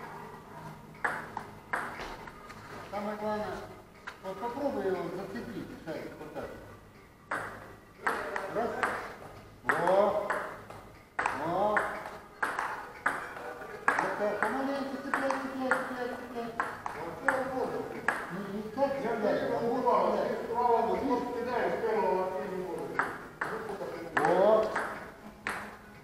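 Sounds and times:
table tennis ball clicking: 0:01.0 - 0:02.0, 0:07.3 - 0:18.3, 0:22.8 - 0:25.8.

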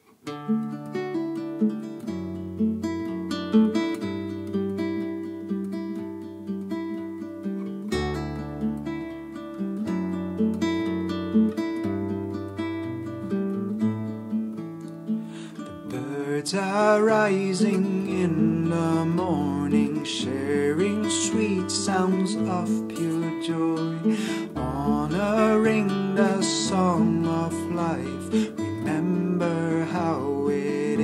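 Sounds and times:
fingerpicked nylon-string guitar: 0:00.0 - 0:31.0.

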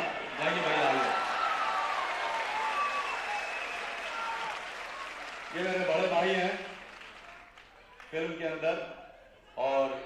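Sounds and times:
audience applauding: 0:00.0 - 0:08.1.

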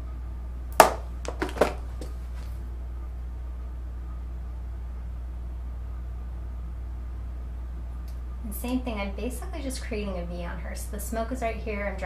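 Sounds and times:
steady low hum: 0:00.0 - 0:12.0
makeup tools tapping: 0:00.8 - 0:01.8.

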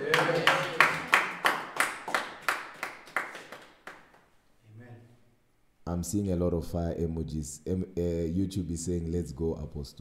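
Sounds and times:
rhythmic hand claps: 0:00.0 - 0:04.3.

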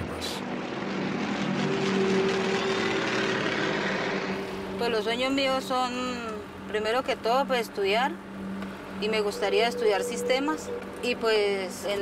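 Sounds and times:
propeller plane engines humming: 0:00.0 - 0:12.0.

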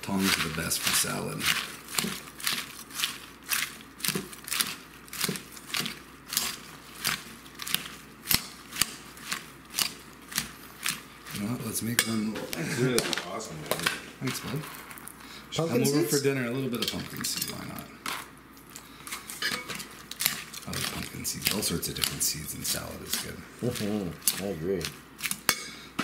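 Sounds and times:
lettuce leaves rustling: 0:00.0 - 0:12.0, 0:18.6 - 0:25.5
metal tongs clacking in bowl: 0:16.8 - 0:17.7, 0:19.4 - 0:20.4.

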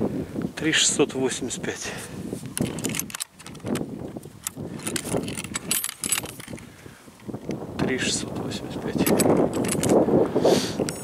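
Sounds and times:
handling noise rustling: 0:02.3 - 0:07.6, 0:08.9 - 0:10.0
metallic rattles: 0:02.6 - 0:03.8, 0:04.4 - 0:06.6, 0:08.9 - 0:10.0.

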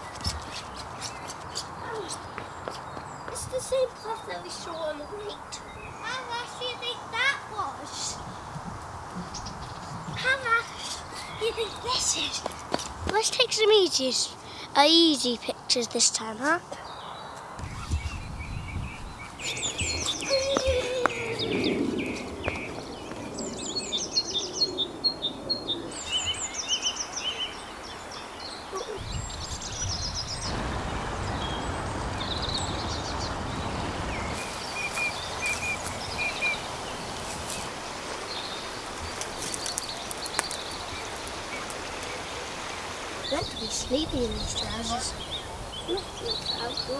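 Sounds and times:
outdoor background hiss: 0:00.0 - 0:46.9
small birds chirping: 0:00.0 - 0:46.9.

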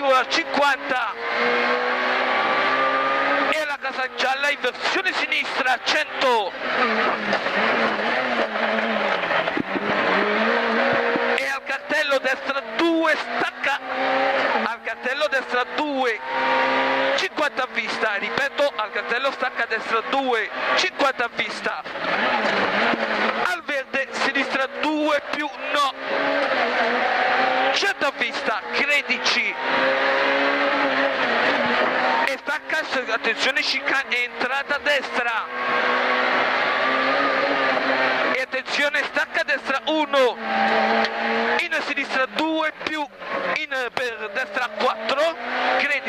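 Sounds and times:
car engine running hard: 0:00.0 - 0:46.0.

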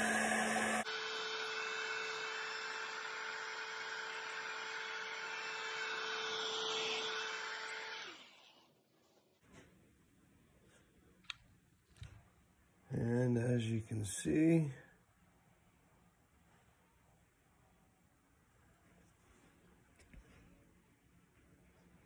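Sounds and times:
heat gun fan whirring: 0:00.0 - 0:08.6.

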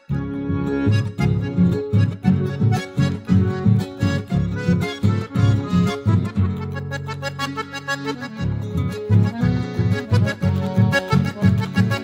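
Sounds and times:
accordion-led folk ensemble: 0:00.0 - 0:12.0.

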